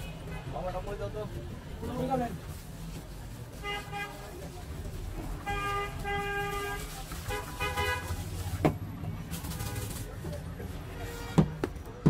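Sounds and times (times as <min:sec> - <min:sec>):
low traffic rumble: 0:00.0 - 0:12.0
vehicle horns honking: 0:05.4 - 0:08.2, 0:10.9 - 0:11.6.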